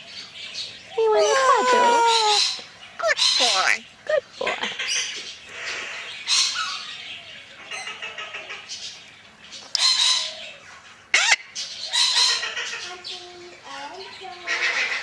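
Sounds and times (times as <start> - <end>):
parrot squawking and chattering: 1.0 - 6.9, 11.1 - 13.2, 14.2 - 15.0.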